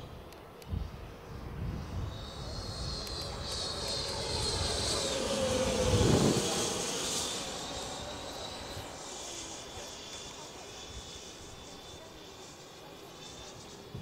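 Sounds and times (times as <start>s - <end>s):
model jet fan whine: 0.0s - 14.0s.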